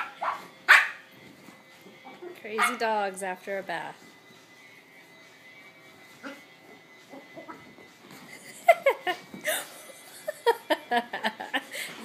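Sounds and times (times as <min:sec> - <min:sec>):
dogs yelping: 0:00.0 - 0:01.1, 0:02.6 - 0:02.8, 0:06.2 - 0:06.5
dogs shuffling: 0:00.0 - 0:12.0.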